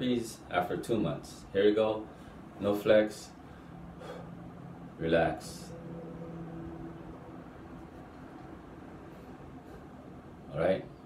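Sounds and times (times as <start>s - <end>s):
low room hum: 0.0s - 11.0s
faint steady tones: 2.0s - 11.0s.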